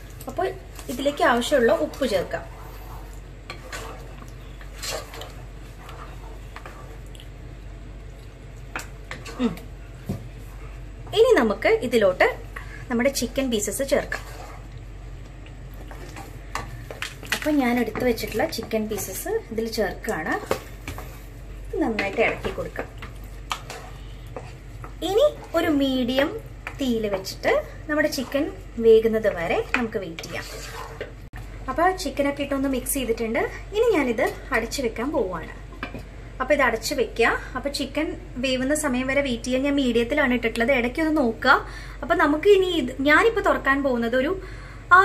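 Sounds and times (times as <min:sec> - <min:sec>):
wooden spoon stirring in pot: 0:00.0 - 0:37.8.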